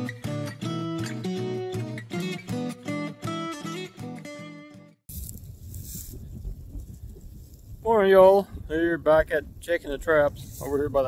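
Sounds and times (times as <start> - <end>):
wind buffeting microphone: 5.1 - 11.0.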